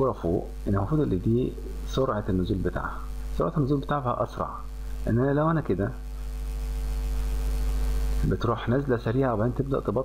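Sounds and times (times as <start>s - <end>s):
background hiss: 0.0s - 10.0s
electrical mains hum: 0.0s - 10.0s.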